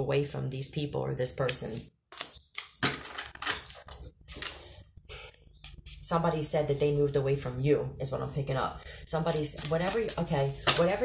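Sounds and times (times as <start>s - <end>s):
cards clicking and tapping on desk: 1.5s - 4.6s, 9.3s - 11.0s.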